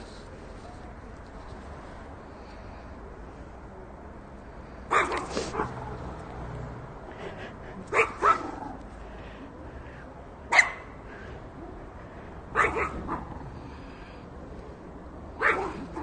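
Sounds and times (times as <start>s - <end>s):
low background noise: 0.0s - 16.0s
small dog yapping: 12.6s - 13.3s, 15.4s - 16.0s.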